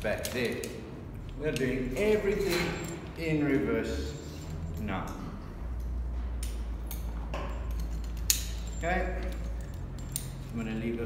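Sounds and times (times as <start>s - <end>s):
carabiners clinking and clicking: 0.0s - 11.0s.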